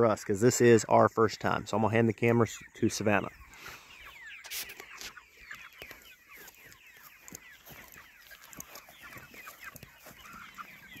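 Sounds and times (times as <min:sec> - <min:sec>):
chickens clucking and peeping: 0:00.0 - 0:11.0.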